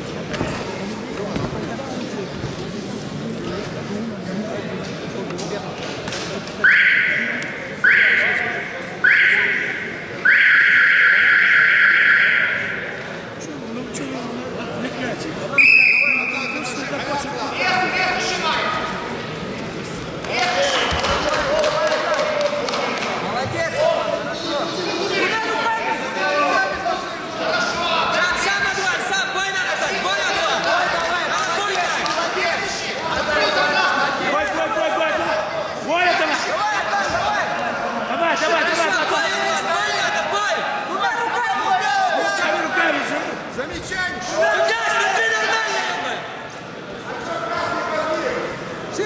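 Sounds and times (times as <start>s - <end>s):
referee's whistle: 6.6s - 12.8s, 15.6s - 16.6s
coaches and spectators shouting: 6.6s - 13.1s, 20.3s - 49.0s.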